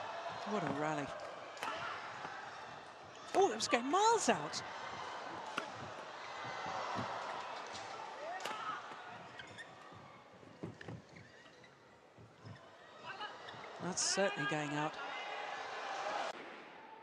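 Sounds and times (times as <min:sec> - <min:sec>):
arena crowd murmur: 0:00.0 - 0:10.7, 0:12.6 - 0:16.4
racket striking shuttlecock: 0:05.4 - 0:05.9.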